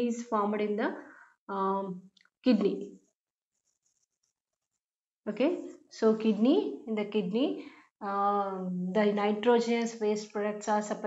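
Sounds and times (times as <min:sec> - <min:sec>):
marker squeaking on whiteboard: 0:02.8 - 0:04.8.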